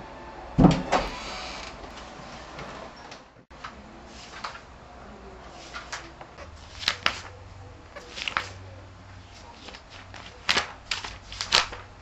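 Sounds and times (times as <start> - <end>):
wooden door thump: 0.6 - 1.2
short rustle: 5.4 - 7.4.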